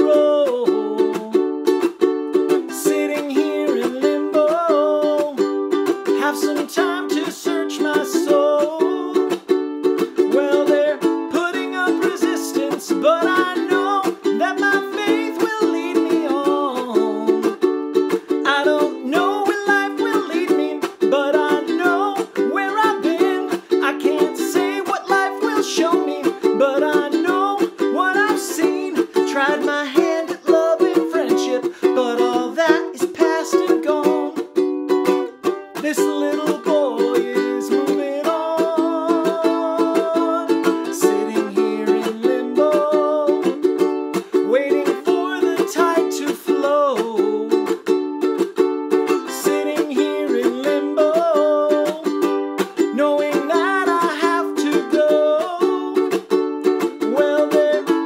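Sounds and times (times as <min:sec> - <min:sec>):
man singing: 0:00.0 - 0:01.8, 0:02.5 - 0:47.9, 0:49.0 - 0:58.0
ukulele strumming: 0:00.0 - 0:58.0.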